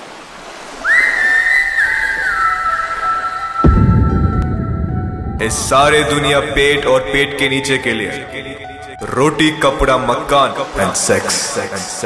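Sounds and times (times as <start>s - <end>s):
whistled tune: 0.8s - 4.4s.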